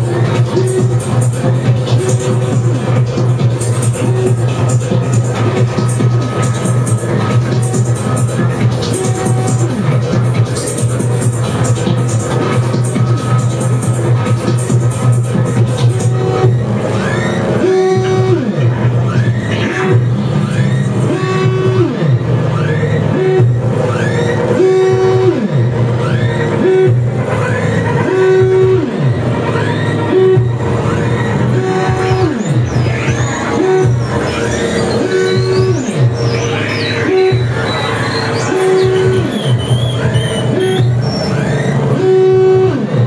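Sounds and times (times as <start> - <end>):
chirping synth sweeps: 0.0 - 43.0
low electronic drone: 0.0 - 43.0
tone sliding down in pitch: 15.9 - 42.9.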